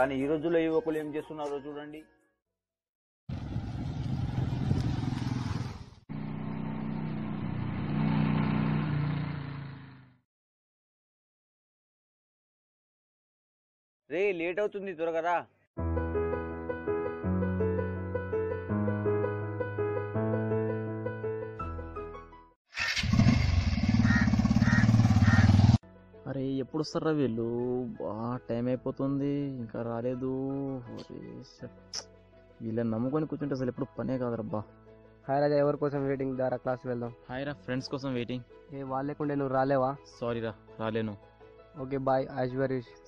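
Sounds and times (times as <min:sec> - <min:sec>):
piano music: 0:00.0 - 0:02.4, 0:15.8 - 0:22.5
motorcycle engine running: 0:03.3 - 0:10.2, 0:23.0 - 0:25.8.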